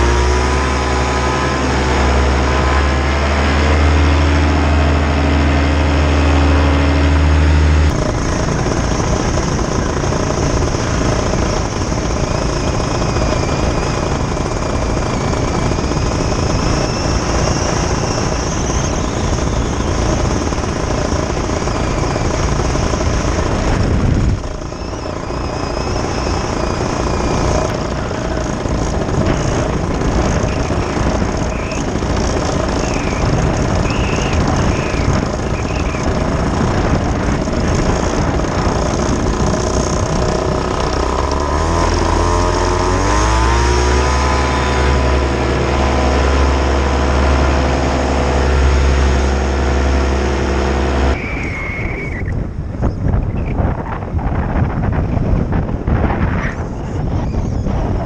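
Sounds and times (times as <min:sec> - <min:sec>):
paramotor engine and propeller: 0:00.0 - 0:58.0
wind rush on microphone: 0:00.0 - 0:58.0.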